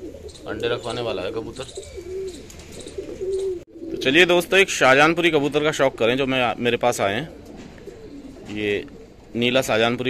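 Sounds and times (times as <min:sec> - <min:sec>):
pigeons cooing: 0:00.0 - 0:10.0.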